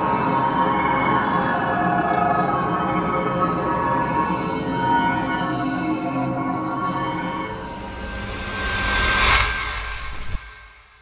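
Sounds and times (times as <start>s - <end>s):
ambient music: 0.0s - 10.4s
cinematic whoosh: 7.6s - 11.0s.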